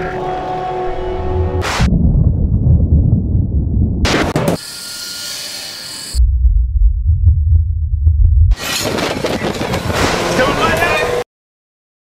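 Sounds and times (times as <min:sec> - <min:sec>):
deep bass rumble: 0:00.8 - 0:04.4, 0:06.2 - 0:08.6.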